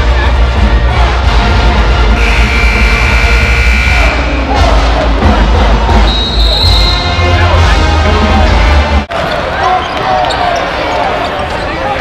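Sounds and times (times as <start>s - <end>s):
loud music with heavy bass: 0.0s - 9.1s
crowd chatter: 0.0s - 12.0s.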